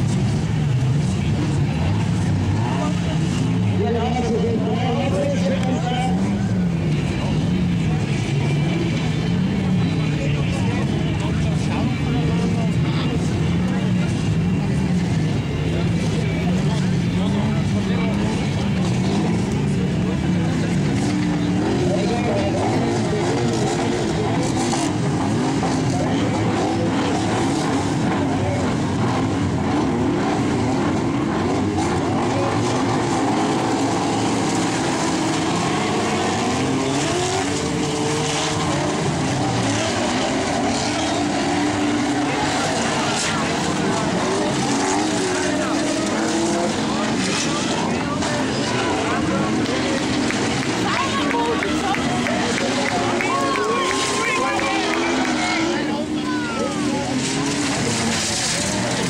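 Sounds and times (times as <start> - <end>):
car engines revving: 0.0 - 59.0.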